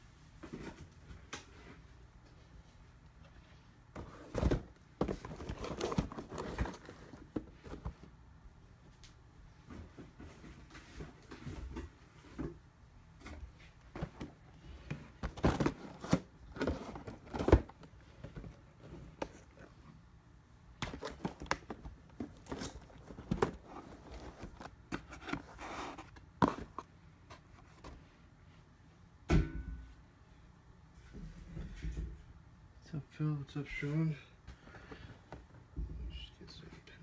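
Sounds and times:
cardboard boxes tapping and scraping: 4.0 - 8.1, 13.9 - 19.6, 20.8 - 28.0.

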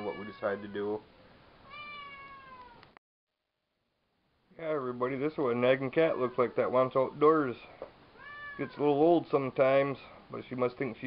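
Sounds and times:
cat meowing: 1.6 - 3.0, 8.2 - 8.8.

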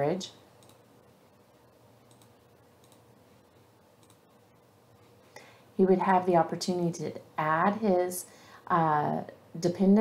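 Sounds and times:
computer mouse clicks: 0.6 - 0.8, 2.0 - 3.1, 4.0 - 4.3.

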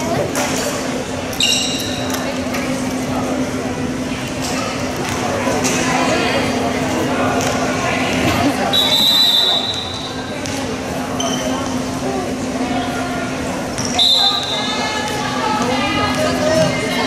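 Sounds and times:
crowd chatter: 0.0 - 17.0
referee's whistle: 8.7 - 10.2, 13.8 - 14.8.

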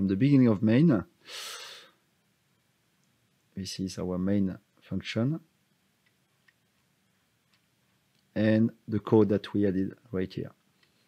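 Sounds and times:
computer mouse clicks: 6.0 - 6.9.

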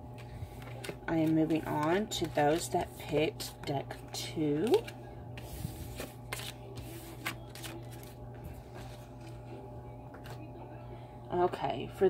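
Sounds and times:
steady low hum: 0.0 - 12.0
cards sliding on wooden surface: 5.4 - 8.0.

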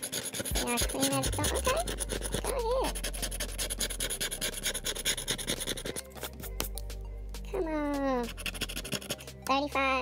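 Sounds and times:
scratching lottery ticket coating: 0.0 - 6.6, 8.2 - 9.4
music: 0.0 - 10.0.

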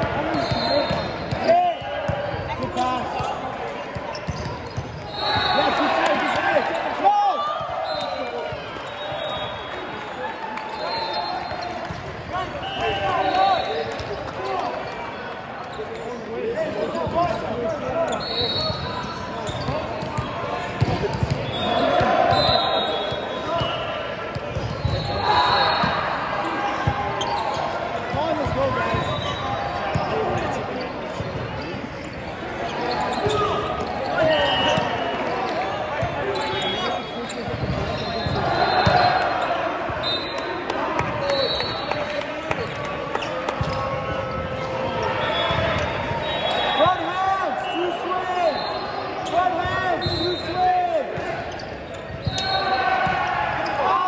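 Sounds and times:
people calling out and chattering: 0.0 - 54.0
sneakers squeaking on court: 2.4 - 5.8, 13.5 - 26.1, 26.7 - 47.0, 51.2 - 53.9.

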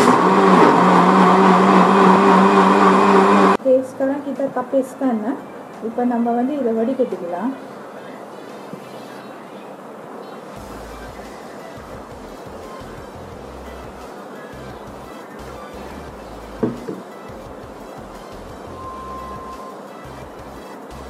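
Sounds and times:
background music with beat: 10.6 - 21.0
sharp knock: 16.6 - 17.0.

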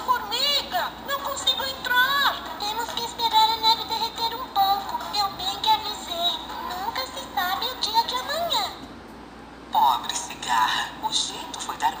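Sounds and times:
high-pitched singing voice: 0.0 - 8.8
toy speaker playing song: 1.2 - 8.6.

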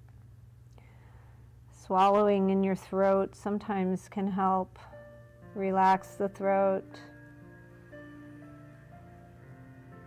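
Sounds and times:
low steady hum: 0.0 - 10.0
woman speaking: 1.7 - 5.0, 5.6 - 7.2.

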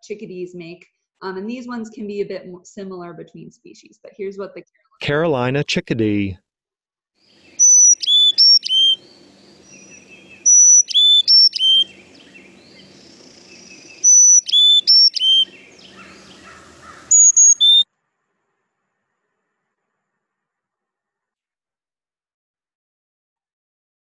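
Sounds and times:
chickadee whistled song: 7.6 - 9.0, 9.7 - 12.0, 13.6 - 15.6, 17.1 - 17.8.

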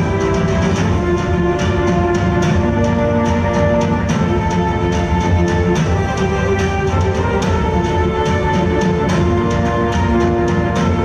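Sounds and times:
held instrumental notes: 0.0 - 11.0
sharp percussion beat: 0.0 - 11.0.

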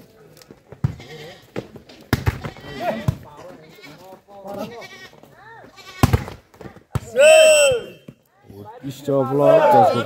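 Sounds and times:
ball landing on court: 2.1 - 3.3, 6.0 - 7.1
players and spectators shouting: 7.0 - 8.2, 8.8 - 10.0.

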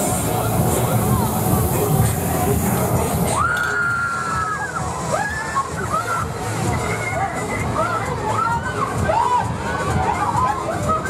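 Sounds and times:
fairground noise: 0.0 - 11.0.

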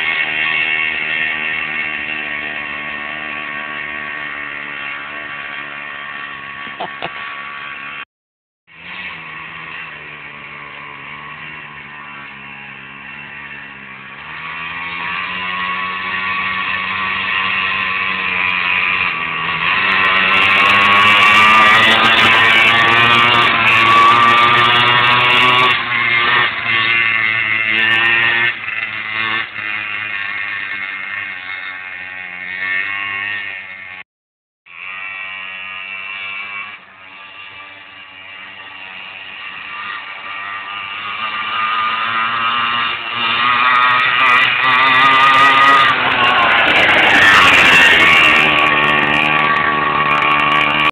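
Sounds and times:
pocket bike engine buzzing: 0.0 - 8.1, 8.7 - 34.1, 34.7 - 50.9.

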